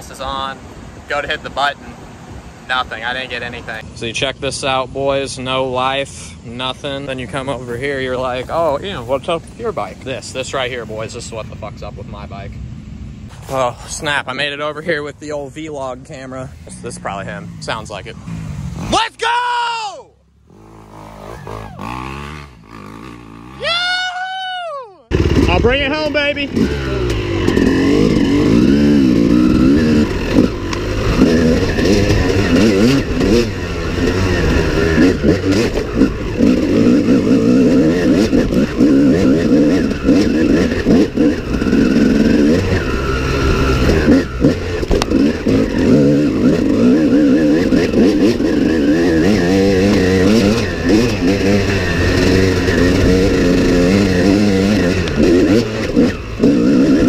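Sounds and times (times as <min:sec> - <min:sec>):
dirt bike engine revving: 0:15.8 - 0:19.2, 0:20.4 - 0:24.1, 0:25.1 - 0:57.0.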